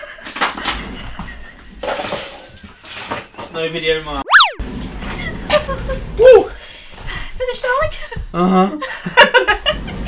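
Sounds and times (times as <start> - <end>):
comic whistle sweep sound effect: 4.2 - 4.6
woman's voice: 7.4 - 8.2.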